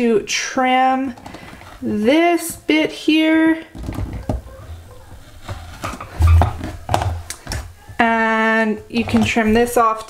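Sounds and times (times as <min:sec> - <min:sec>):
low bumps against table: 0:05.9 - 0:07.2.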